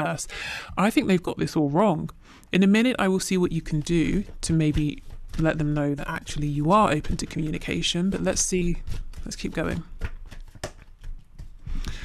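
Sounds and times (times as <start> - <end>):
cards being shuffled: 4.0 - 11.8.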